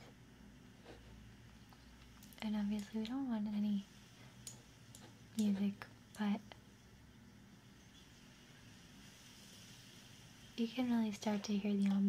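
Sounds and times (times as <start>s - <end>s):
faint wind-like hiss: 0.0s - 12.0s.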